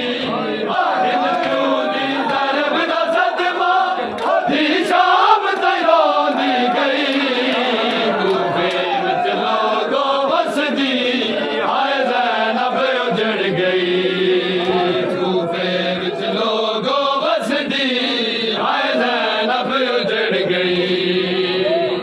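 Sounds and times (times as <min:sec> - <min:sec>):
crowd chanting a lament: 0:00.0 - 0:22.0.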